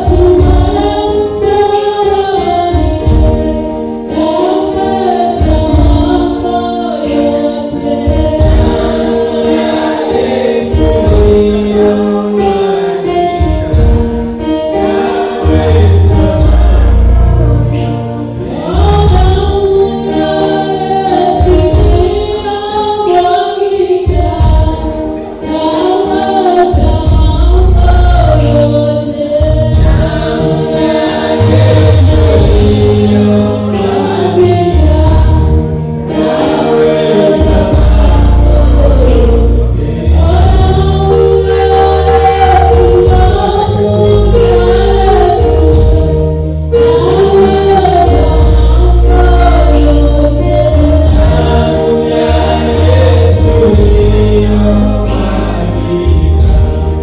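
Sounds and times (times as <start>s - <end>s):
electronic keyboard with deep bass: 0.0s - 57.0s
group of voices singing: 0.0s - 57.0s.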